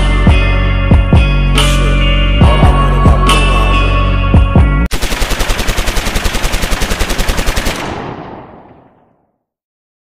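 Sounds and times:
rapid automatic gunfire: 4.9 - 9.2.

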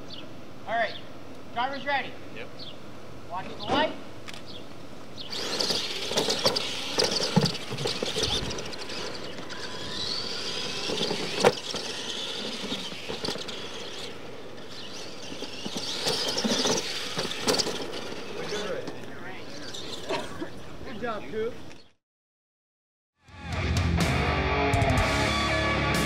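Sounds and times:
toy truck motors whining: 5.1 - 21.9
tyres scrabbling on dirt: 5.2 - 21.9.

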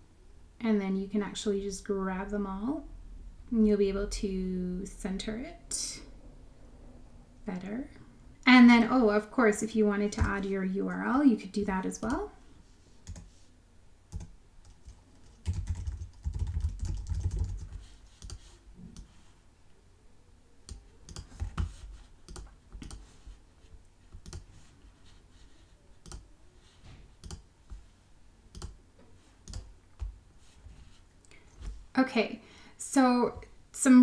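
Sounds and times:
typing on computer keyboard: 14.1 - 18.5, 20.7 - 23.0, 24.2 - 24.5, 26.0 - 26.2, 27.2 - 27.5, 28.5 - 28.8.

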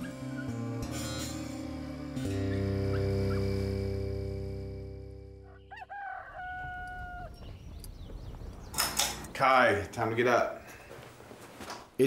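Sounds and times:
held musical chord: 0.2 - 5.5
rooster crowing: 5.4 - 7.5.

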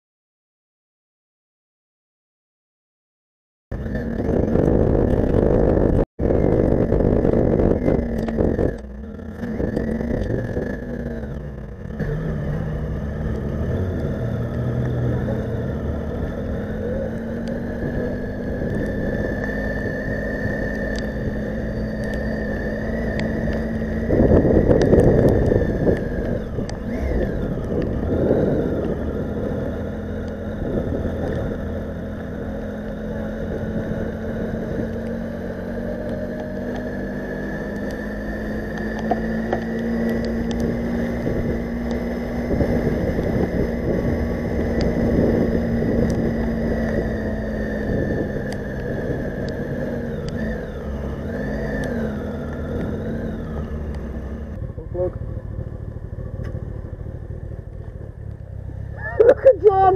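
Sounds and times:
motorcycle engine running: 3.7 - 59.9
wind noise: 3.8 - 10.8, 17.5 - 31.8, 38.9 - 53.8
tyre noise on wet road: 9.4 - 33.5, 34.6 - 59.9.

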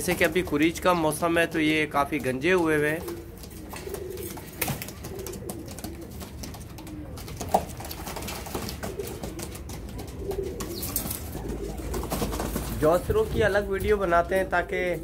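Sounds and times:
pigeons cooing: 0.0 - 13.8.

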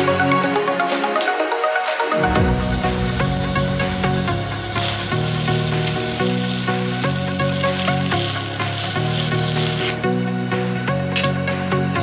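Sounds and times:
welding arc crackling: 4.7 - 11.3.

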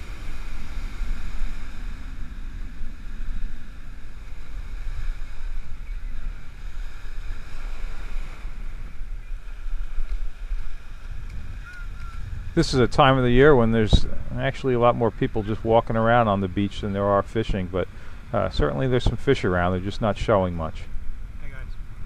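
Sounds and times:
small surf breaking on beach: 0.0 - 22.0
wind buffeting microphone: 0.0 - 22.0.

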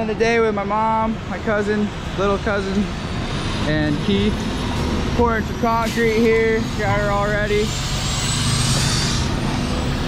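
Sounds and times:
truck engine rumbling: 0.0 - 10.0.

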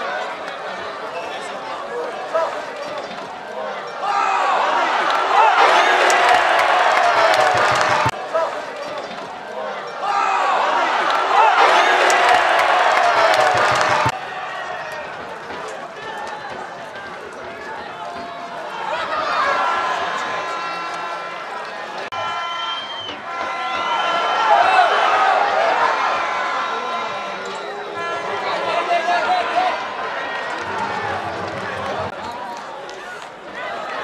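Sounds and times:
stadium crowd ambience: 0.0 - 34.0.

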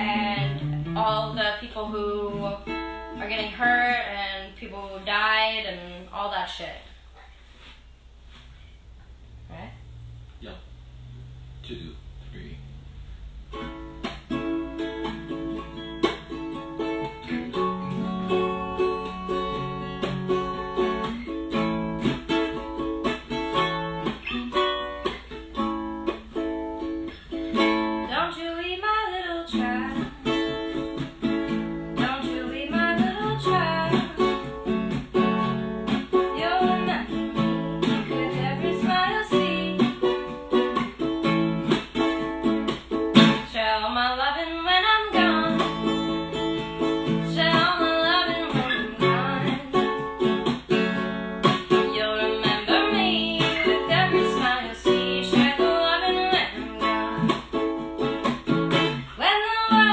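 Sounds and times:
person singing: 0.0 - 2.6, 51.7 - 57.2
ukulele and acoustic guitar: 0.0 - 5.7, 12.7 - 59.9.

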